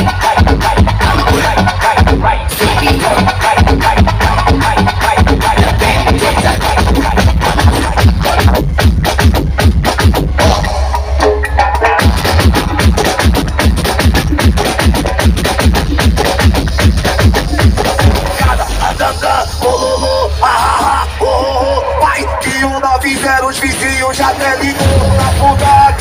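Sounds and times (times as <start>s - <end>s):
electronic dance music: 0.0s - 26.0s.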